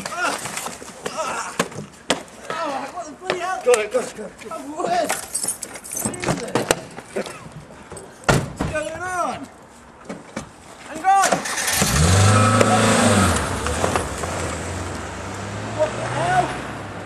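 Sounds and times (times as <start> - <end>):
car engine starting and idling: 11.4 - 15.8.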